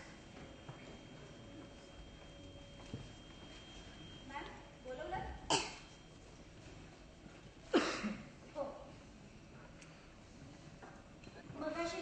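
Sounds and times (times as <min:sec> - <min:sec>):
sharp cough: 0:05.5 - 0:05.9, 0:07.7 - 0:08.3.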